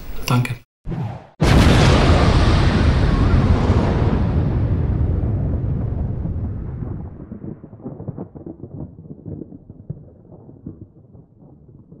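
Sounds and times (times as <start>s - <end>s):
deep thunder-like rumble: 1.4s - 12.0s
scattered crackles: 5.6s - 12.0s.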